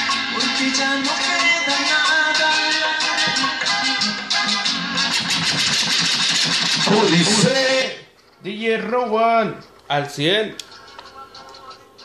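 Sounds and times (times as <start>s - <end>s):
cumbia dance music: 0.0s - 8.0s, 10.7s - 12.0s
dense rattling pulsing noise: 5.0s - 7.2s.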